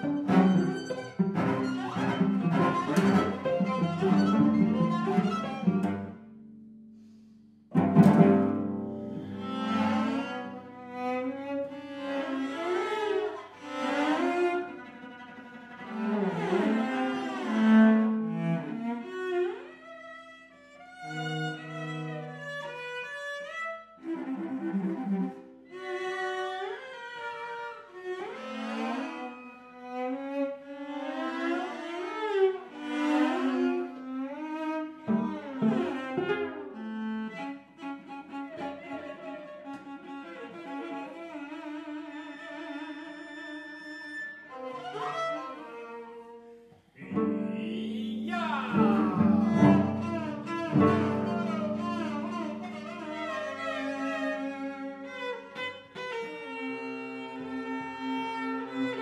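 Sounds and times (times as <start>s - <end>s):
cello quartet playing: 0.0s - 59.0s.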